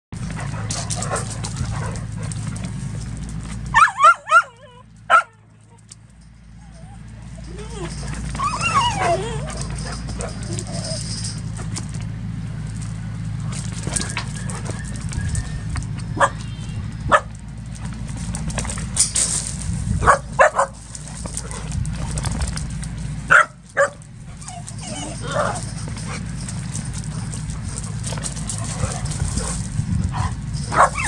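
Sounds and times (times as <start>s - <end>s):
dog barking: 3.7s - 5.4s, 16.2s - 16.5s, 20.0s - 20.8s, 23.3s - 24.0s, 30.2s - 31.0s
dogs whining yips: 3.7s - 5.8s, 6.5s - 11.7s, 13.7s - 17.3s, 23.3s - 31.0s.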